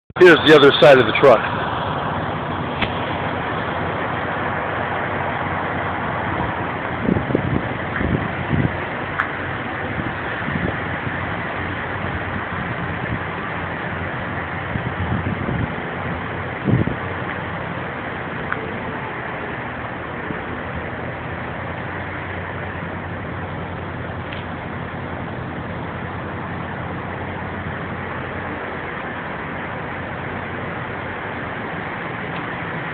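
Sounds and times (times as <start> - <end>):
diesel truck engines idling: 0.1 - 32.9.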